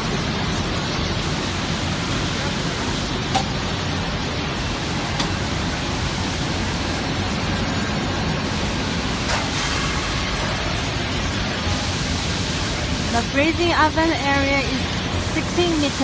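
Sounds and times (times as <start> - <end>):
furnace hiss and rumble: 0.0 - 16.0.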